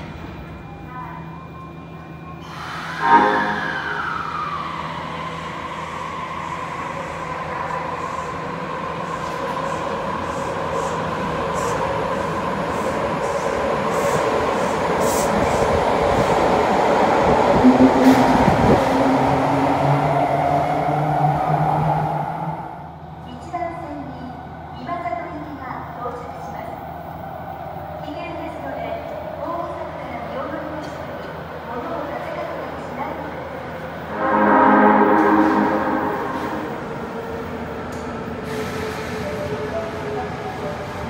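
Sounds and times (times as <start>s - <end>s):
subway train motor whine: 0.0s - 30.6s, 31.5s - 38.5s
sudden loud sound: 34.1s - 37.0s.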